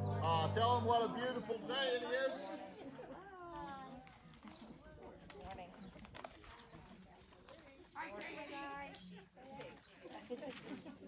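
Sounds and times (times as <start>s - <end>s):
faint voices: 0.0s - 11.0s
low background noise: 0.0s - 11.0s.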